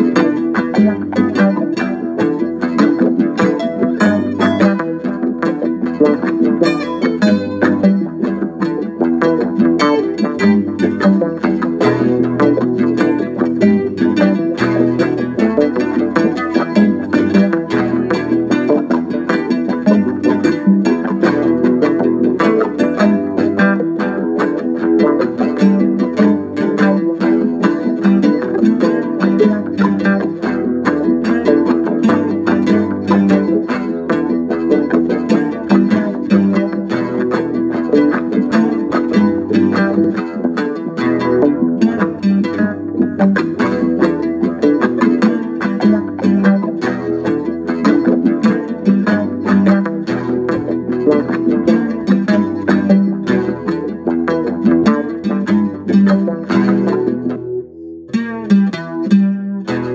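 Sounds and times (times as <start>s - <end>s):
acoustic guitar picking: 0.0s - 59.9s.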